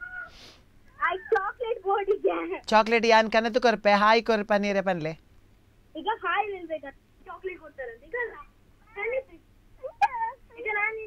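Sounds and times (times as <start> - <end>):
soft hiss: 0.0 - 11.0.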